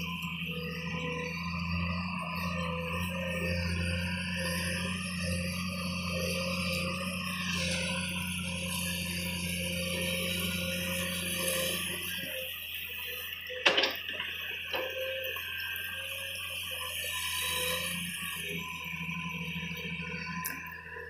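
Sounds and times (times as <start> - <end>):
excavator diesel engine droning: 0.0 - 21.0
hydraulic whine: 0.0 - 21.0.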